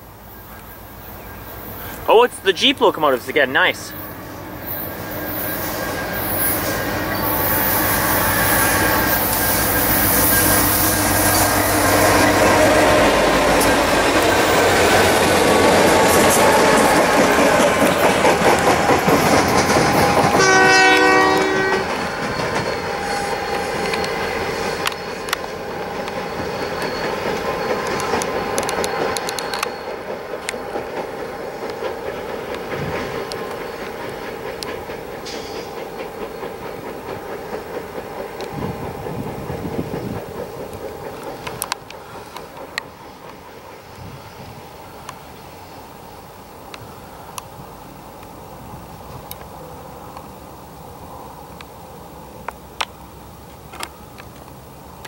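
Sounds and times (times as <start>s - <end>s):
diesel locomotive engines: 0.0s - 55.0s
distant train rumbling: 0.0s - 55.0s
wheels clicking over rail joints: 4.1s - 55.0s
train horn: 20.2s - 25.3s.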